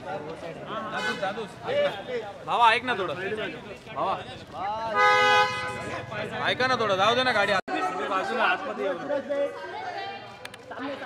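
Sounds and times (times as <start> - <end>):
car horn honk: 5.0 - 6.1.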